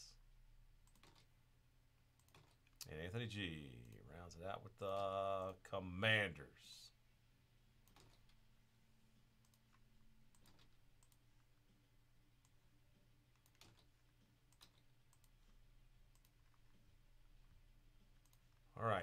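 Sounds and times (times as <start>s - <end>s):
computer mouse clicks: 0.8s - 1.3s, 2.1s - 2.9s, 7.8s - 8.4s, 9.4s - 11.3s, 13.3s - 16.8s, 18.1s - 18.6s.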